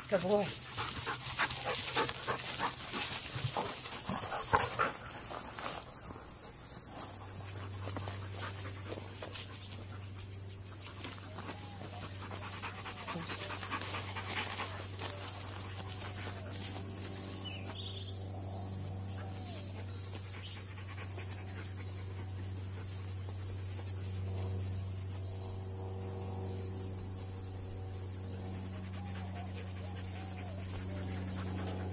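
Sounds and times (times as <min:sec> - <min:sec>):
dog panting: 0:00.3 - 0:17.8, 0:19.0 - 0:24.2, 0:28.6 - 0:31.9.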